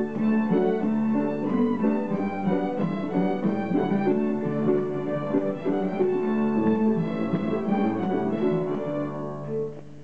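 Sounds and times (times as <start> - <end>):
string ensemble playing: 0.0 - 10.0.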